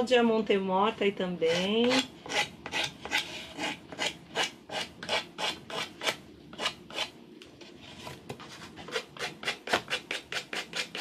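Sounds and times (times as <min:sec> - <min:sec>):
nail file rasping on wood: 0:01.5 - 0:07.1, 0:08.9 - 0:11.0.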